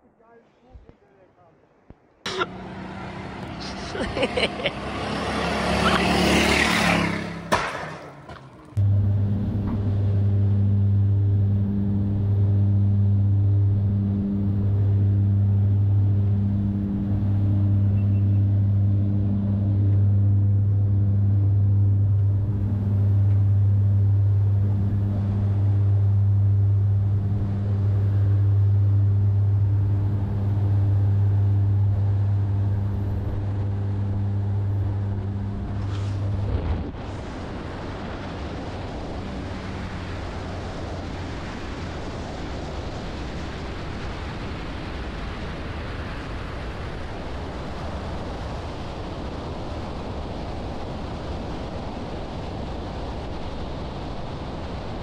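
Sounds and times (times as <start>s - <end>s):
plane engine and propeller droning: 0.0s - 55.0s
car passing loudly: 2.3s - 8.9s.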